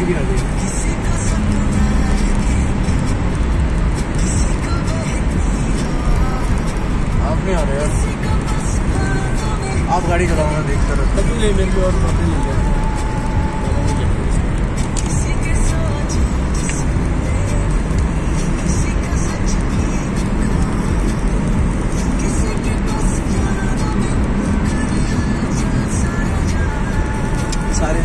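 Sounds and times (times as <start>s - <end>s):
music playing in car: 0.0s - 28.0s
road and engine rumble: 0.0s - 28.0s.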